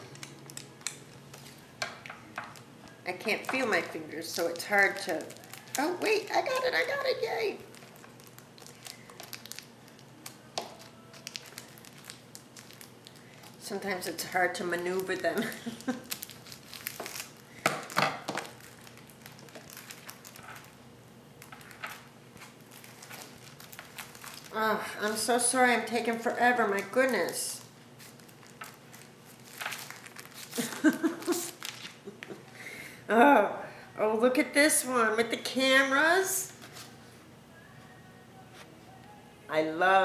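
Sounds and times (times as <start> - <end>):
paper packaging crinkling: 0.0 - 20.8, 21.4 - 32.6
plastic wrapper crackling: 0.0 - 32.6.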